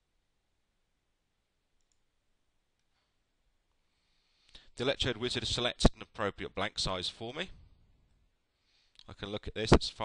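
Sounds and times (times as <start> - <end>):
computer mouse clicking: 1.8 - 2.0.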